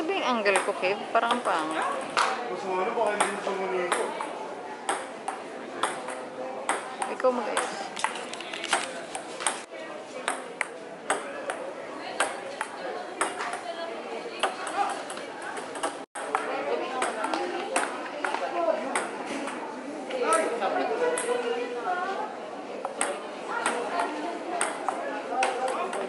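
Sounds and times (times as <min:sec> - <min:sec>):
murmur of voices: 0:00.0 - 0:26.0
table tennis ball clicking: 0:22.8 - 0:26.0.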